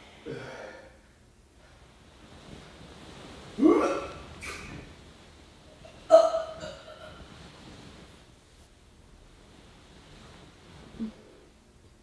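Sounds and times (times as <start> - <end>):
man fake retching: 3.6 - 4.7.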